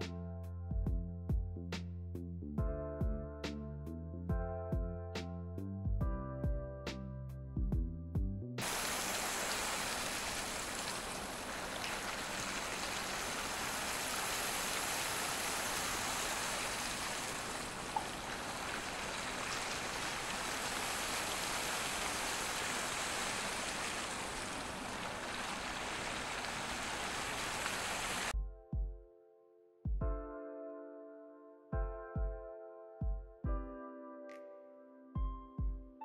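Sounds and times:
fountain water rushing: 0:08.6 - 0:28.3.

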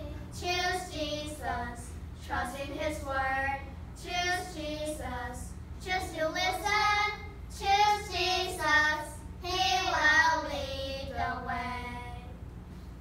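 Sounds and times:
children singing a worship song: 0:00.0 - 0:12.3.

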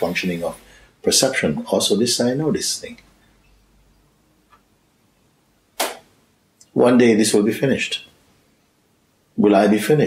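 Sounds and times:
sharp intake of breath: 0:00.6 - 0:01.0.

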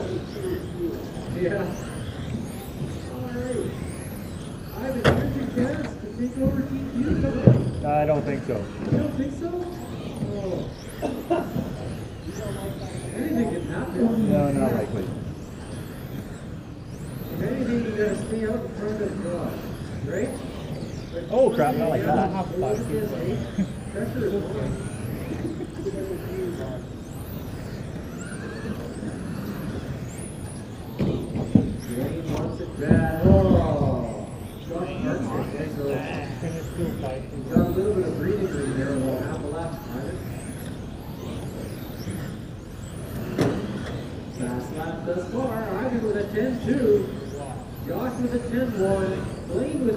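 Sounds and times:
electric motors whining: 0:00.0 - 0:49.9
low hum of hall: 0:00.0 - 0:49.9.

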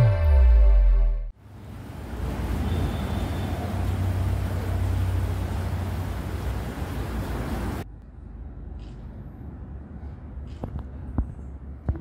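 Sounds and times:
street traffic rumble: 0:01.4 - 0:12.0.

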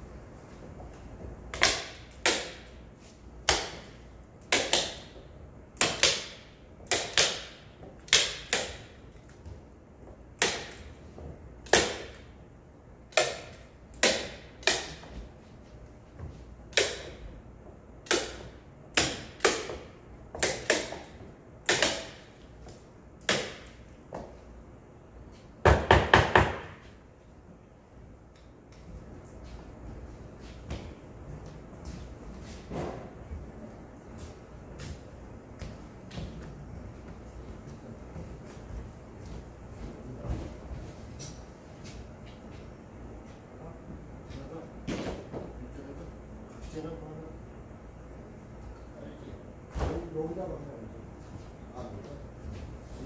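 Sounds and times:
staple gun firing: 0:20.4 - 0:22.2.

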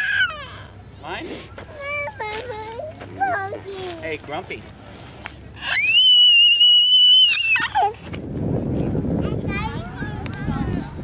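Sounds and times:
toddler squealing: 0:00.0 - 0:00.8, 0:05.6 - 0:08.0.

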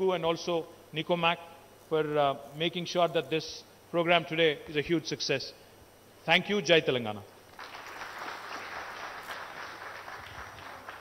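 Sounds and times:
audience applauding: 0:07.5 - 0:11.0.

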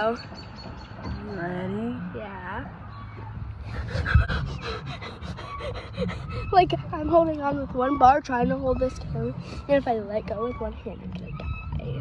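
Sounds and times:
wind rumbling on microphone: 0:00.0 - 0:12.0
girl panting: 0:03.6 - 0:06.9.

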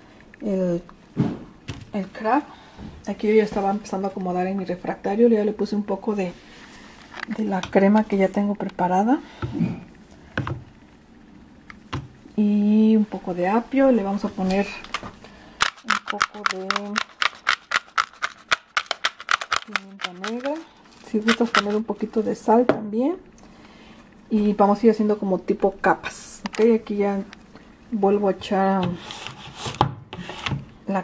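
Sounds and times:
pepper grinder clicking: 0:15.6 - 0:20.6, 0:21.2 - 0:21.8.

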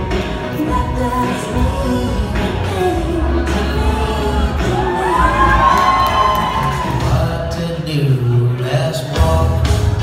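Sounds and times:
crowd cheering: 0:04.6 - 0:07.4.

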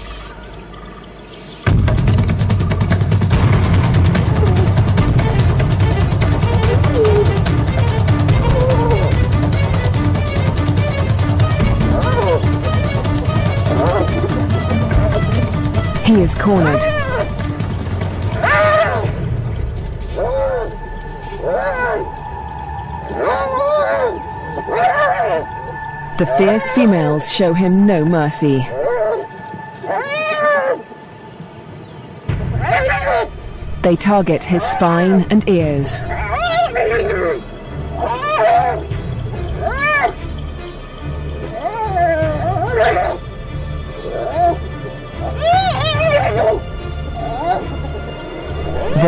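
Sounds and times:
documentary music with low pulse: 0:00.0 - 0:49.0
hyenas crying out: 0:04.0 - 0:17.5, 0:18.2 - 0:19.2, 0:23.0 - 0:27.6, 0:28.6 - 0:30.9, 0:32.6 - 0:33.3, 0:36.0 - 0:40.2, 0:41.3 - 0:43.3, 0:44.0 - 0:49.0.

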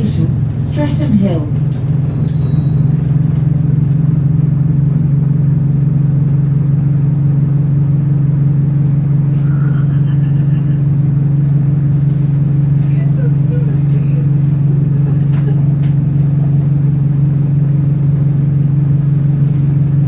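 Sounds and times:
bus engine droning: 0:00.0 - 0:20.0.

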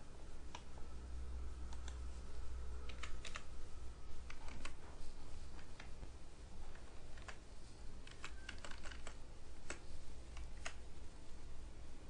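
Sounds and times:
computer keyboard typing: 0:02.9 - 0:03.5, 0:04.2 - 0:04.8, 0:06.7 - 0:07.4, 0:08.0 - 0:10.8.

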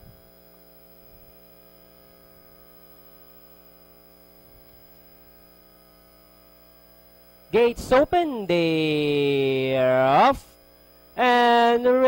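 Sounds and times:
faint electrical mains hum: 0:00.0 - 0:12.0.

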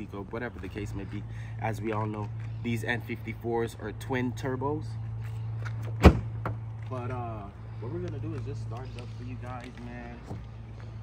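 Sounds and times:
sharp thump: 0:06.0 - 0:06.6.

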